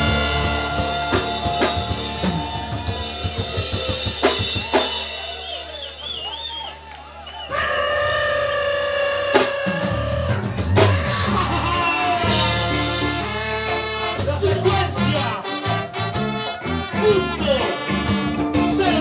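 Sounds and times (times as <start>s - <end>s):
drum hits: 0.0s - 4.9s
held horn notes: 0.0s - 5.2s, 10.4s - 19.0s
live ska band playing: 0.0s - 19.0s.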